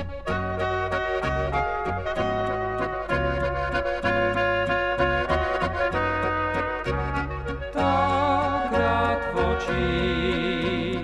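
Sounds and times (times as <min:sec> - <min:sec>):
accordion: 0:00.0 - 0:11.0
bass alternating notes: 0:00.0 - 0:11.0
brass melody: 0:00.0 - 0:11.0.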